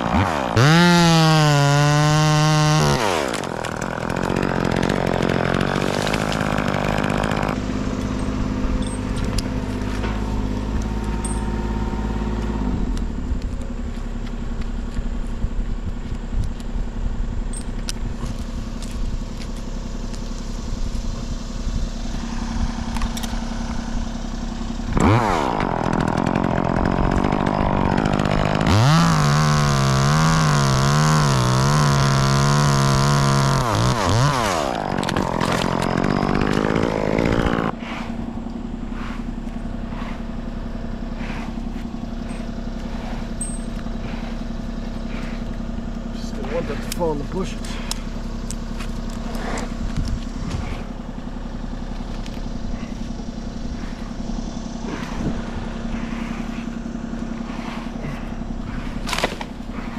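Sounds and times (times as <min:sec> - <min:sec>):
chainsaw cutting through trunk: 0:00.0 - 0:15.1, 0:18.0 - 0:59.9.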